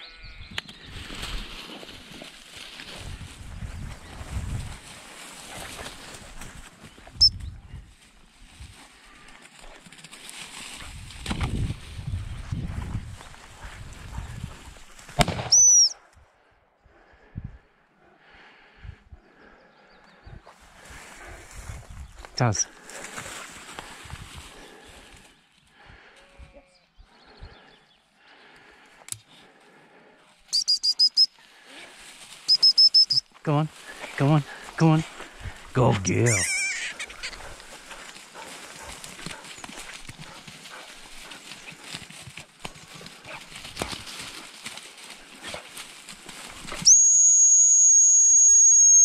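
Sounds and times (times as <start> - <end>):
rustling in grass: 0.7 - 15.6, 20.6 - 25.8, 30.3 - 47.2
dog whistle pips: 15.5 - 16.0, 30.5 - 31.3, 32.5 - 33.2, 46.8 - 49.0.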